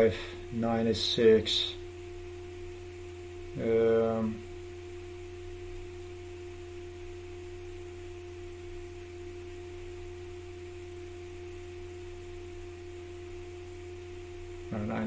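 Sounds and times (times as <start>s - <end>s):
mid-pitched tone: 0.0s - 15.0s.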